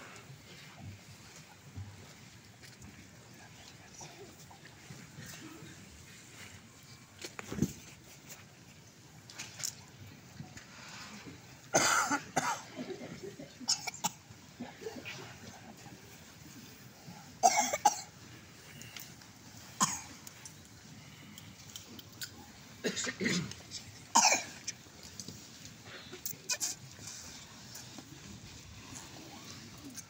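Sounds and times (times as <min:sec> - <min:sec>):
faint murmur: 0:00.0 - 0:30.0
person coughing: 0:11.7 - 0:13.0, 0:17.4 - 0:18.1, 0:22.8 - 0:24.6
people coughing: 0:11.7 - 0:15.7, 0:17.2 - 0:18.9, 0:19.6 - 0:20.2, 0:22.8 - 0:24.8, 0:25.8 - 0:27.2.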